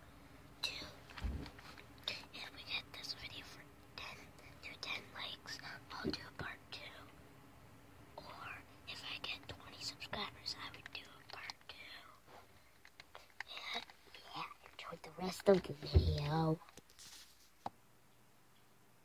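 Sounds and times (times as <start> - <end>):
person whispering: 2.1 - 7.1, 8.2 - 12.4, 13.1 - 16.6.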